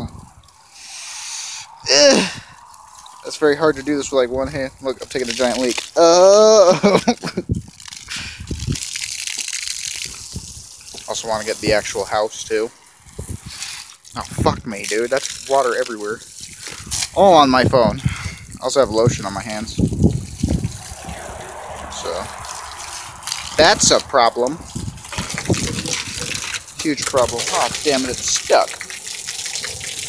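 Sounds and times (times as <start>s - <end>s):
garden hose water splashing: 0.0s - 30.0s
low bumps: 19.0s - 27.2s.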